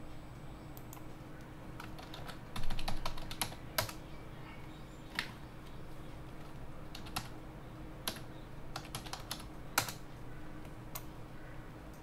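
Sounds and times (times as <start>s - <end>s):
keyboard keystrokes: 1.8s - 4.0s, 8.8s - 10.0s.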